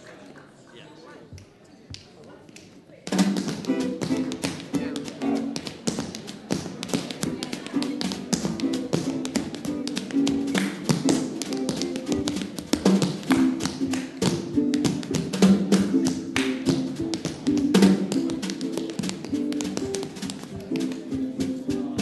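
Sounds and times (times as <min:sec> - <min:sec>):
snare drum: 0:03.1 - 0:05.2, 0:10.1 - 0:22.0
tap shoes on wooden stage: 0:03.1 - 0:22.0.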